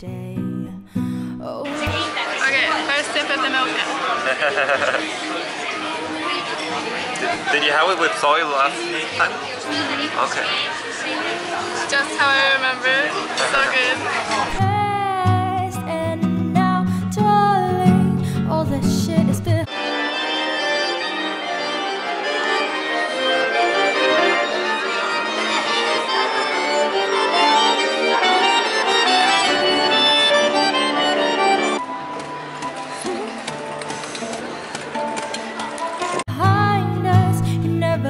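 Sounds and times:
accordion playing a tune: 19.6s - 32.4s.

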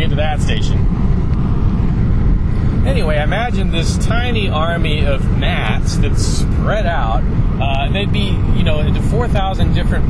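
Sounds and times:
low rumble of background noise: 0.0s - 10.0s.

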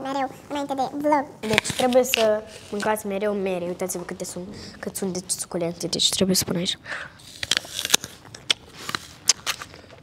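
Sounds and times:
person crunching an apple: 7.2s - 10.0s.

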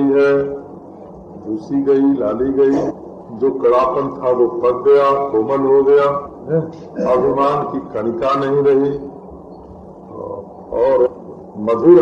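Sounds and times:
man speaking: 1.4s - 9.1s, 10.1s - 12.0s.

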